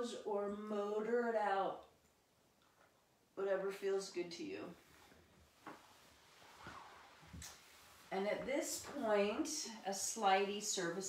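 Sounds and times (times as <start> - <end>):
clothing rustling on wooden floor: 4.8 - 10.4.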